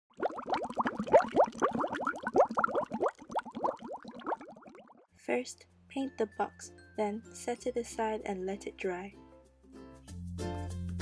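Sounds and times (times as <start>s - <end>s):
water bubbling: 0.1s - 5.1s.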